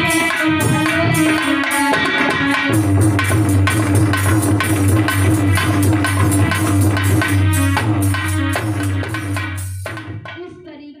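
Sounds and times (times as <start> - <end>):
woman singing: 0.0 - 2.6
harmonium and keyboard music: 0.0 - 9.8
drum beat: 0.0 - 10.8.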